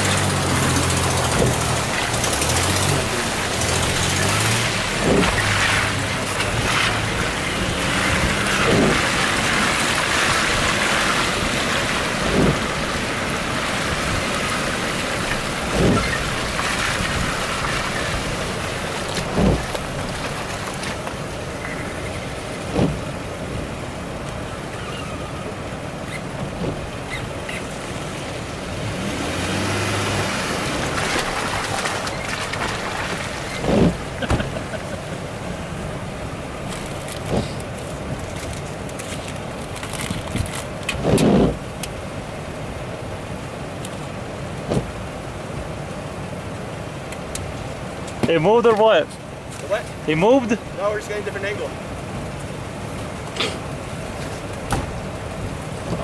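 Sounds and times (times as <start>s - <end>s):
engine running inside cab: 0.0s - 7.2s, 33.5s - 35.2s.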